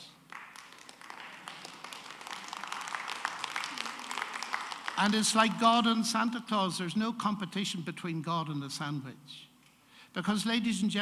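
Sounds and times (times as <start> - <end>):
audience applauding: 0.3 - 5.8.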